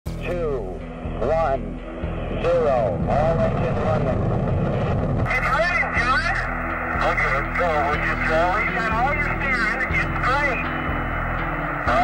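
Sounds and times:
rocket engines rumbling: 1.2s - 12.0s
radio voice counting down: 5.3s - 10.8s.

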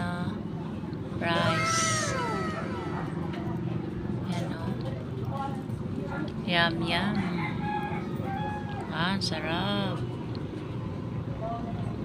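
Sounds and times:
animal call sliding down in pitch: 1.4s - 3.6s.

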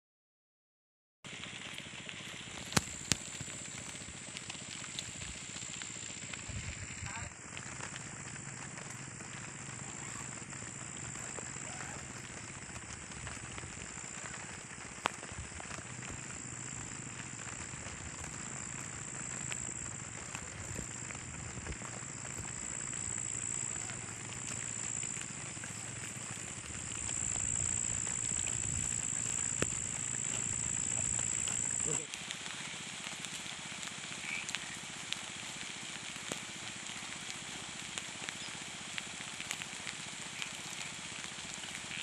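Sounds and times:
night insects chirring: 2.6s - 42.0s.

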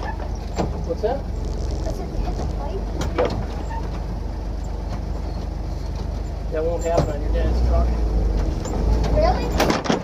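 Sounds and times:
car engine running steadily: 0.0s - 10.0s.

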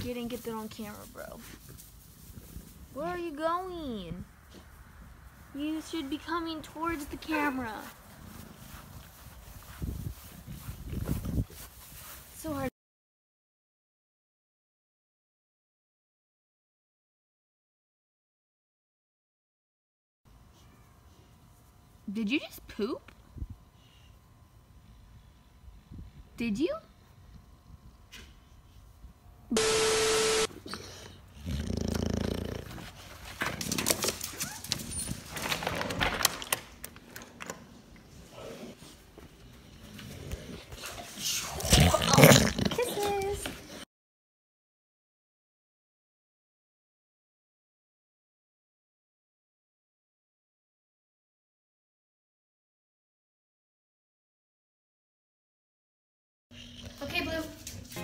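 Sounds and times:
footsteps on grass: 7.0s - 12.7s
glitchy static sound effect: 29.6s - 30.5s
dog grumbling: 31.3s - 32.9s, 41.5s - 43.2s.

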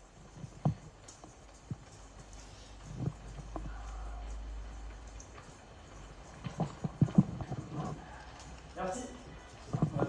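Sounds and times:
sharp clicks and knocks: 0.0s - 8.8s.

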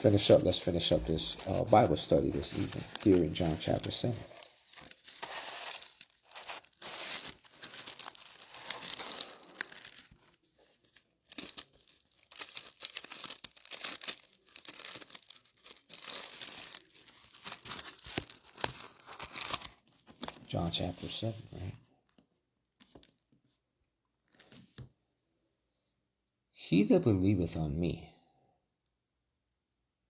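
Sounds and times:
thin pages being turned: 0.0s - 21.0s.

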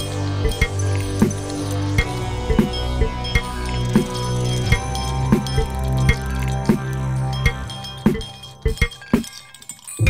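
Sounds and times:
ice cubes clinking against glass: 0.0s - 10.0s.

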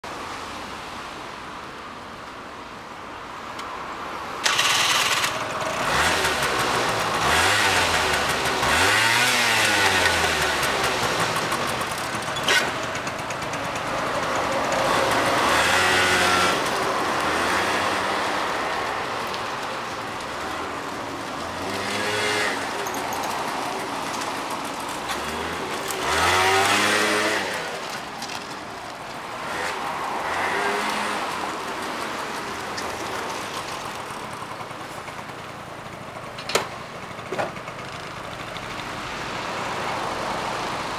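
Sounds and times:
scooter engine revving: 4.4s - 18.6s, 21.5s - 28.1s, 29.3s - 31.4s.

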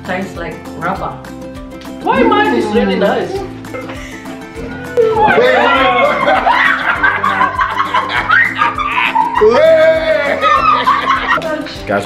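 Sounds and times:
background music: 0.0s - 12.0s
man laughing: 5.4s - 11.4s.

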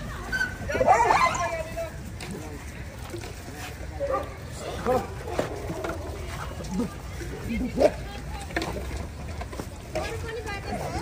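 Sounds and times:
dogs barking and yipping: 0.2s - 1.8s, 4.0s - 5.8s.

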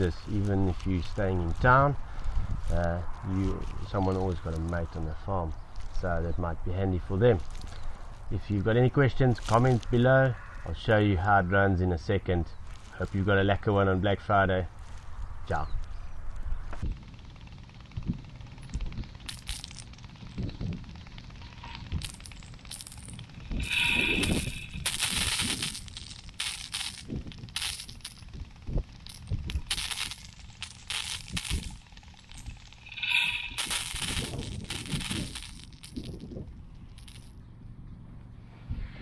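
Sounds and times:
sprinkler head ticking: 16.9s - 36.2s.

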